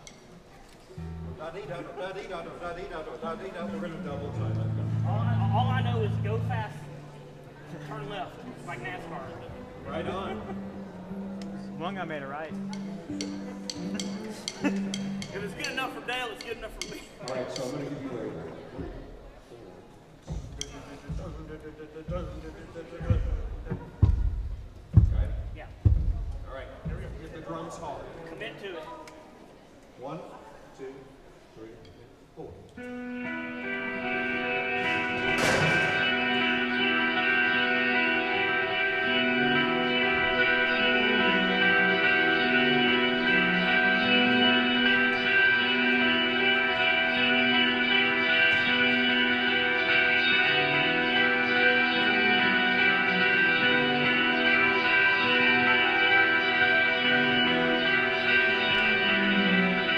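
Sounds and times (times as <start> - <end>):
guitar chords: 0.9 - 1.9, 3.2 - 17.5, 32.8 - 59.9
rock band and orchestra playing: 3.7 - 7.7, 9.4 - 16.5, 32.8 - 59.9
kick drum thuds: 20.3 - 22.4, 23.0 - 27.3.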